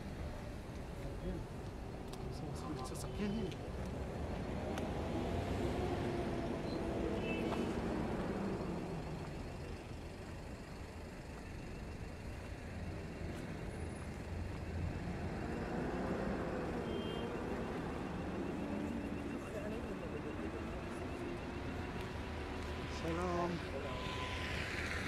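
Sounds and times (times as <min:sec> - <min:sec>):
traffic engines rumbling: 0:00.0 - 0:25.0.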